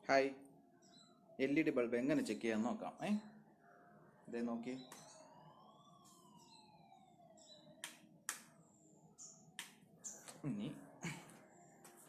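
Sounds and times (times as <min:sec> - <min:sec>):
faint rising and falling whine: 0:00.0 - 0:12.0.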